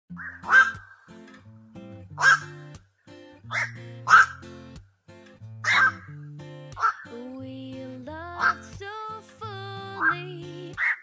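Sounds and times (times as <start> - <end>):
heron calls: 0.1 - 1.1, 2.2 - 2.5, 3.5 - 4.4, 5.6 - 6.1, 6.8 - 7.1
background music: 0.1 - 11.0.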